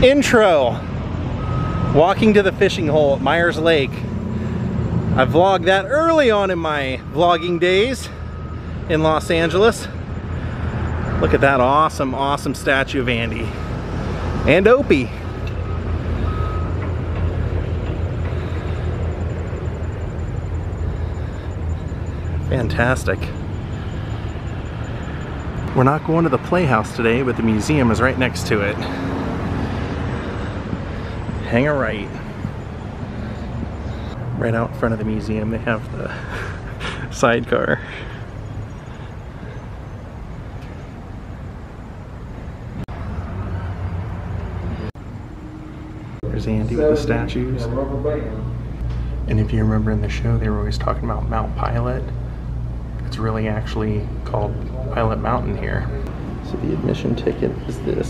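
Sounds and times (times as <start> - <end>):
traffic rumble: 0.0 - 58.0
faint whine: 14.5 - 27.3.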